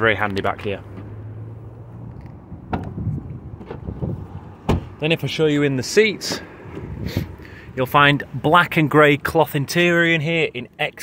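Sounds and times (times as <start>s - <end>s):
wind rumbling on microphone: 2.3s - 4.6s, 6.7s - 7.4s.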